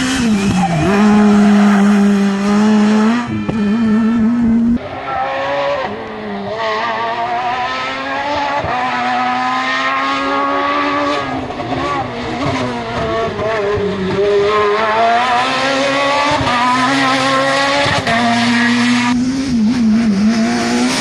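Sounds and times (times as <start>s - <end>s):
rally car engine at high revs: 0.0s - 21.0s.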